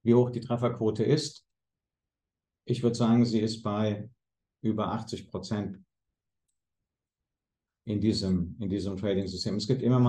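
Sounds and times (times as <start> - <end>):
man speaking: 0.0 - 1.4, 2.7 - 5.8, 7.9 - 10.0.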